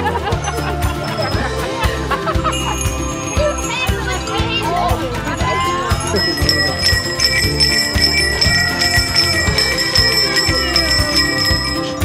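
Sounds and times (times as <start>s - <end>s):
small metal bells jangling: 0.9s - 12.0s
steady high ringing: 2.3s - 12.0s.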